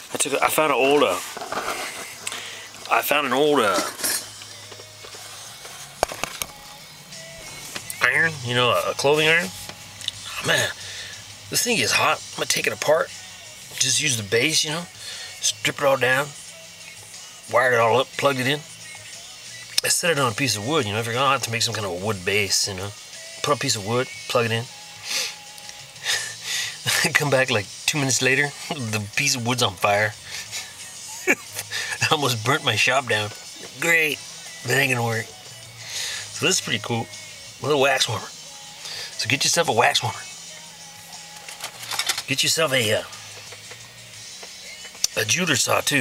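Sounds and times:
man breathing close to microphone: 1.8 - 2.8, 10.8 - 11.4, 15.0 - 15.4, 25.0 - 26.8, 30.2 - 30.8, 31.6 - 32.0, 35.7 - 36.4, 38.8 - 39.2.

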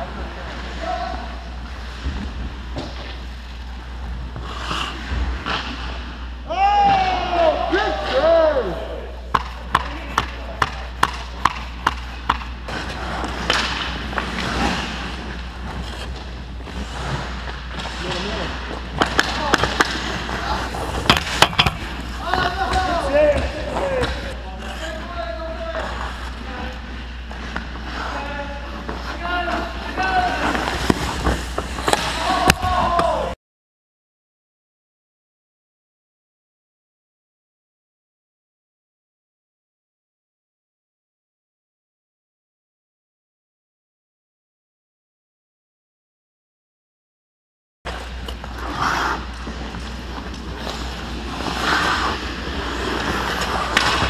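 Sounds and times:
skates scraping ice: 0.0 - 6.2, 7.3 - 33.4, 47.9 - 54.0
stick and puck knocks: 9.3 - 12.6, 20.8 - 24.2, 53.7 - 54.0
players shouting: 22.0 - 24.4, 31.9 - 33.4.

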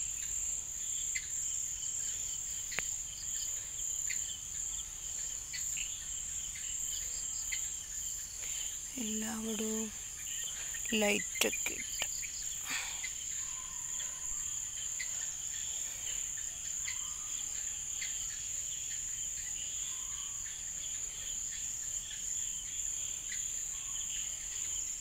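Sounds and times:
insects trilling: 0.0 - 25.0.

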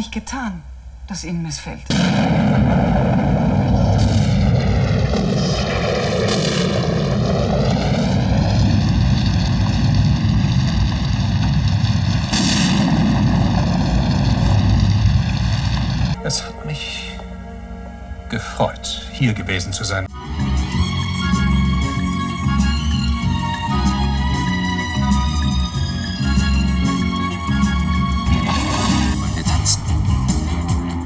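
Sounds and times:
aircraft flying past: 2.2 - 16.2.

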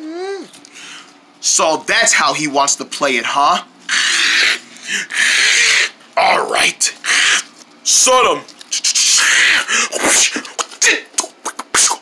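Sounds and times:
person hissing: 3.9 - 5.9, 8.8 - 12.0.

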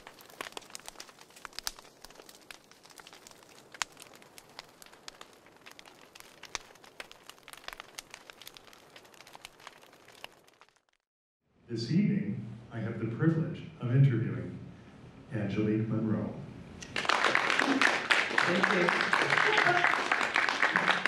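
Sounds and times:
fireplace fire crackling: 0.0 - 11.1, 16.8 - 21.0
soft steady hiss: 11.5 - 21.0.

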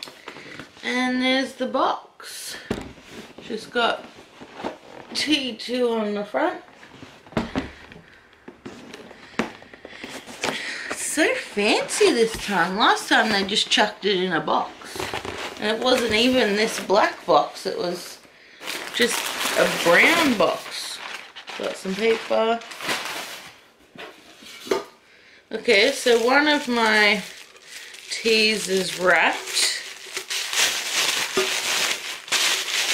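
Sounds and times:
cardboard scraping rustle: 3.0 - 5.4, 14.8 - 16.8
tins rustling in a box: 18.6 - 24.7, 25.7 - 32.9.

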